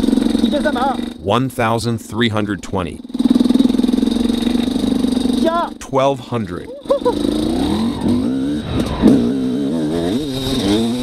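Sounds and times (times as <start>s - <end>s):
two-stroke engine lugging: 0.0s - 11.0s
person speaking: 0.4s - 3.0s, 5.4s - 7.2s.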